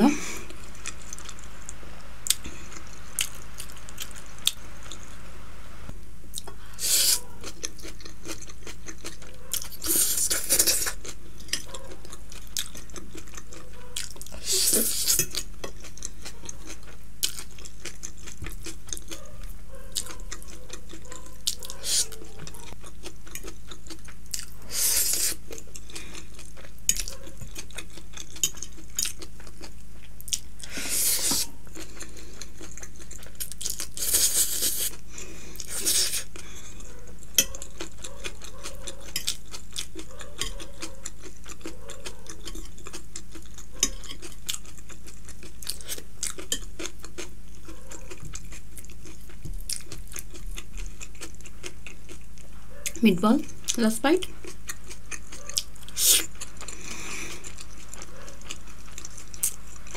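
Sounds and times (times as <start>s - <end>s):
chewing noodles: 0.4s - 5.1s, 6.3s - 59.9s.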